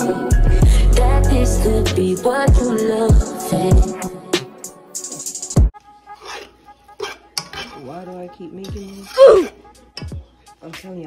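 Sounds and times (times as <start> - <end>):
fork stirring pasta: 6.1 - 9.7
fork clicking against pot: 6.2 - 7.8.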